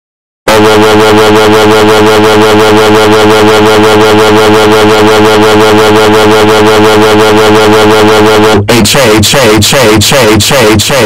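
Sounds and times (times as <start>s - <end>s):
distorted electronic buzzing drone: 0.5s - 11.0s.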